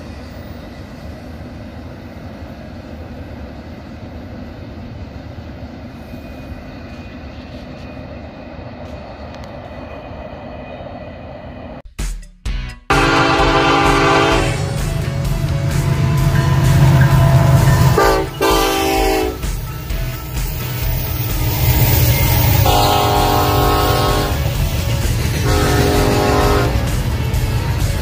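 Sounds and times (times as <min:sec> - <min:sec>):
train rumbling past: 0:00.0 - 0:11.8, 0:12.9 - 0:28.0
locomotive air horn blasts: 0:12.9 - 0:19.6, 0:22.5 - 0:24.6, 0:25.4 - 0:27.0.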